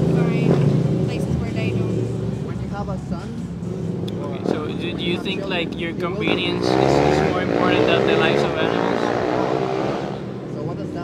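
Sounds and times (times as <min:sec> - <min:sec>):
vehicle engine passing: 0:00.0 - 0:11.0.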